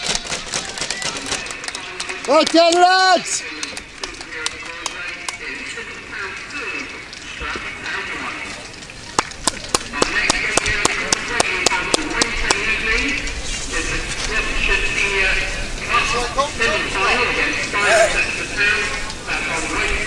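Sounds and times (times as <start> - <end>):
spectators' voices: 0.0 - 20.0.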